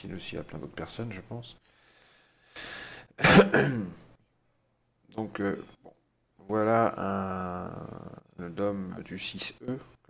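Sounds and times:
man clearing his throat: 3.2s - 4.0s.

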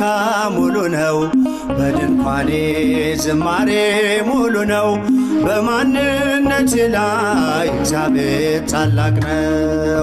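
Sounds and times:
person singing a hymn: 0.0s - 10.0s
low bass line: 1.5s - 10.0s.

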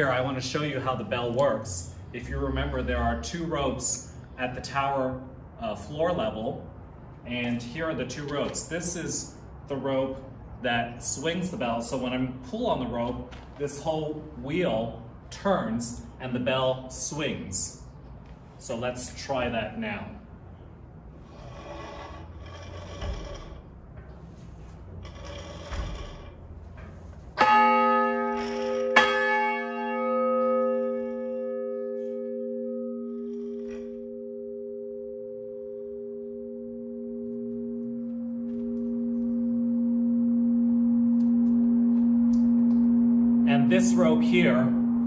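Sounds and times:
bell wheel creaking and rumbling: 21.2s - 34.7s
church bell ringing: 27.4s - 45.0s.

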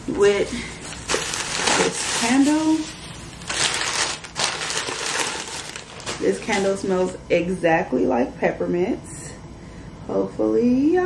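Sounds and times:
wrapping crinkling and rustling: 0.4s - 7.2s.

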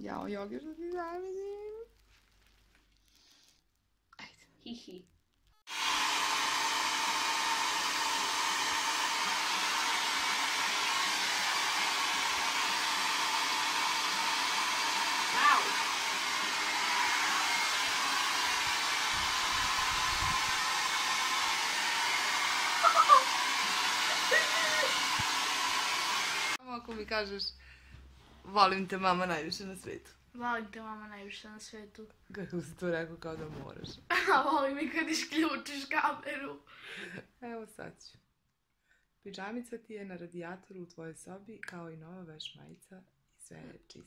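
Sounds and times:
hair dryer blowing: 5.7s - 26.6s.

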